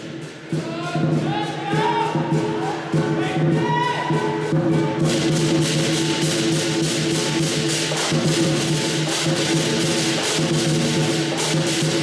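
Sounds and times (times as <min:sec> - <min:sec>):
drums and cymbals beat: 0:00.0 - 0:12.0.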